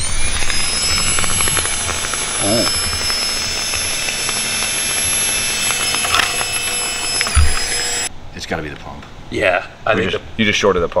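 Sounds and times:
crackling electrical clicks: 0.0s - 8.1s
fuel pump whining: 0.0s - 8.1s.

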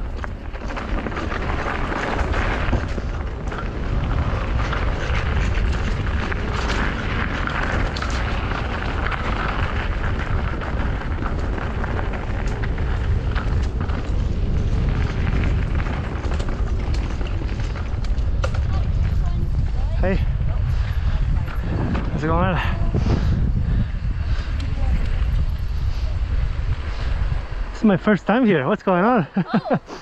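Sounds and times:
bike rattles and clicks: 0.0s - 29.8s
wind rumble on microphone: 0.0s - 29.9s
tyre noise on dirt trail: 0.0s - 30.0s.

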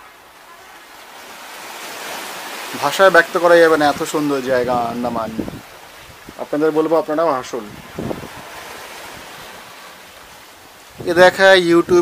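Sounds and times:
sea waves washing on shore: 0.0s - 12.0s.

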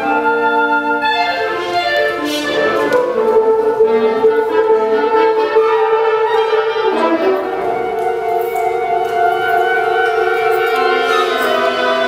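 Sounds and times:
woodwind quintet holding notes: 0.0s - 12.0s.

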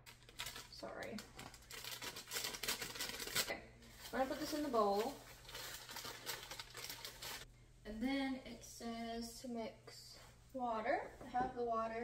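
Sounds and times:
bag crinkling: 0.0s - 7.4s.

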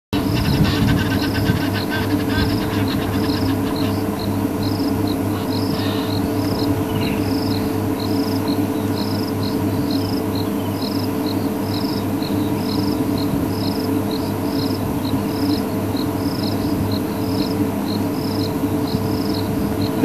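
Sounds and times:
insects chirping: 0.2s - 20.0s
low steady hum: 0.2s - 20.0s.

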